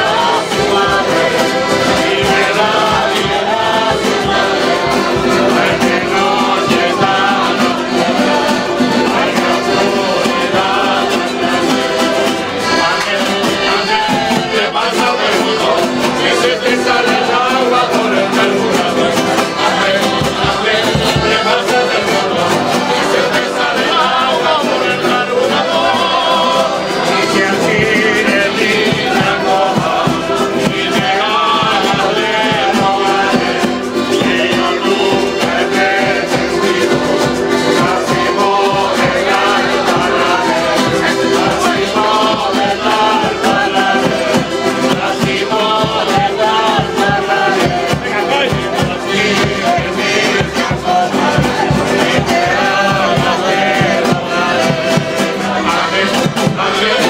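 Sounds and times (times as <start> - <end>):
accordion: 0.0 - 57.0
men singing together: 0.0 - 57.0
strummed guitars: 0.0 - 57.0.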